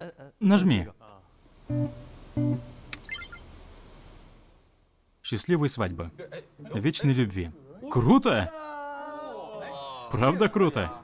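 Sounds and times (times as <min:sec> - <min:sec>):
plucked guitar: 0:01.7 - 0:03.0.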